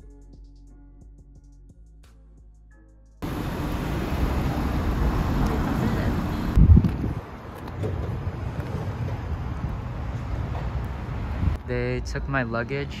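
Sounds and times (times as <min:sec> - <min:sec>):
traffic noise: 0:03.2 - 0:13.0
wind on microphone: 0:06.4 - 0:07.4.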